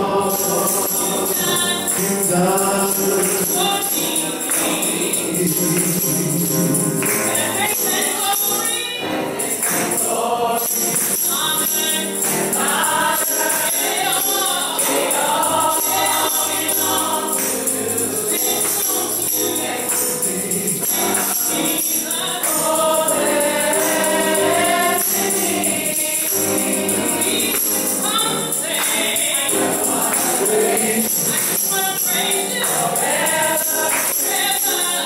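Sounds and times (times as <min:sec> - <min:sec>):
group singing gospel song: 0:00.0 - 0:35.0
percussion beat: 0:00.0 - 0:35.0
person singing into microphone: 0:00.0 - 0:35.0
hand clapping: 0:00.5 - 0:08.8, 0:09.5 - 0:10.1, 0:10.7 - 0:35.0.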